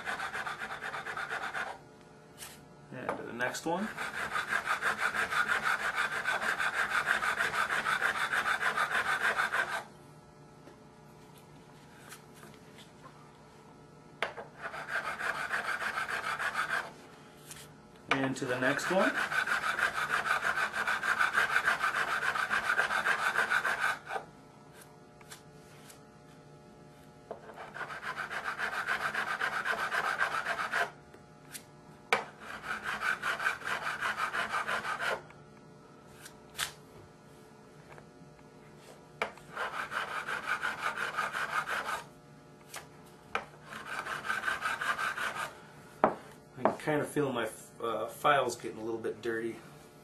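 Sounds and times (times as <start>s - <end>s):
file rasping on metal: 0.0s - 1.8s, 3.8s - 9.9s, 14.5s - 17.0s, 18.5s - 24.3s, 27.4s - 31.0s, 32.2s - 35.2s, 39.5s - 42.1s, 43.6s - 45.5s.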